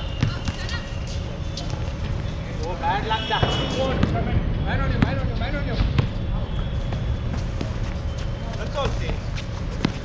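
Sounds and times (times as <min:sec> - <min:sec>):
basketball bouncing on hard court: 0:09.8 - 0:10.0.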